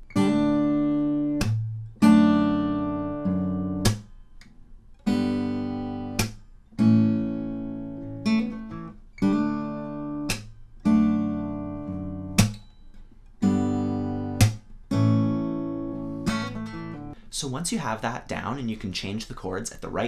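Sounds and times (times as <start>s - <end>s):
fingerpicked acoustic guitar: 0.0s - 17.4s
hand slapping guitar strings: 1.2s - 2.2s, 3.7s - 5.5s, 6.1s - 6.5s, 10.0s - 17.2s.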